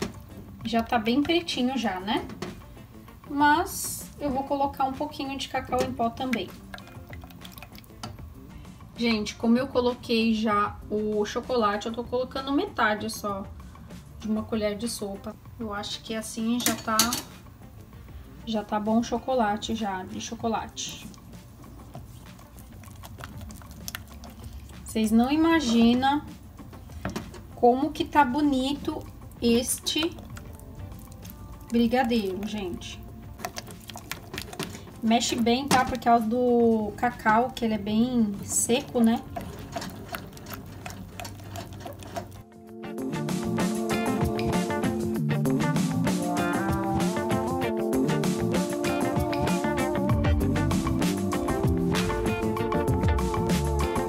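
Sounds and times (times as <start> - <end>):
loud background music: 0.0 - 54.0
spatula stirring thick paste: 5.1 - 8.5, 19.6 - 42.5
spatula scraping metal saucepan: 38.5 - 42.4.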